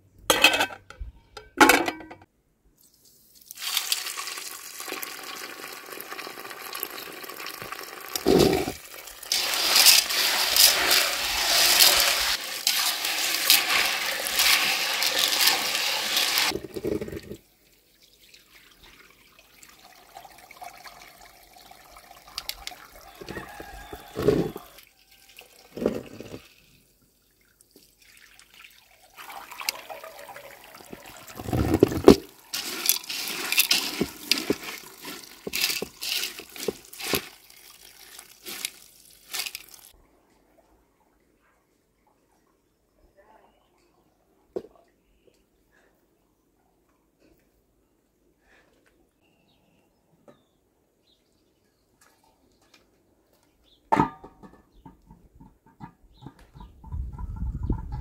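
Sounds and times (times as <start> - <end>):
hose water splashing into pot: 3.3 - 17.2, 27.6 - 40.0.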